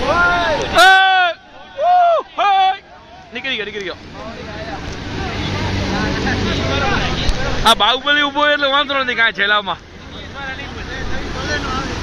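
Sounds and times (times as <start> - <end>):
faint bystander voices: 0.0 - 12.0
water rushing: 0.0 - 12.0.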